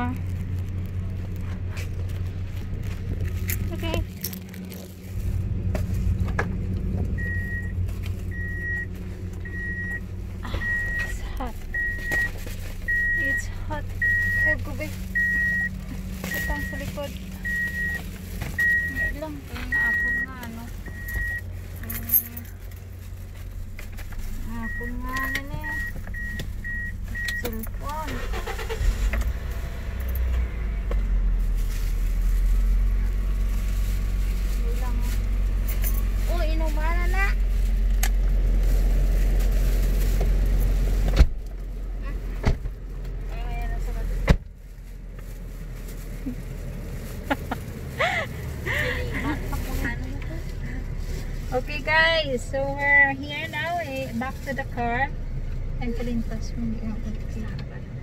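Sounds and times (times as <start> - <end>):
rustling: 0.0 - 54.8
low steady rumble: 0.0 - 58.0
keys jingling: 20.9 - 22.8.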